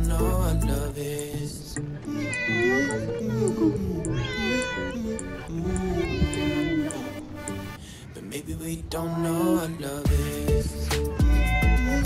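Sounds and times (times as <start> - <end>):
cat meowing: 2.1 - 7.2, 11.1 - 12.0.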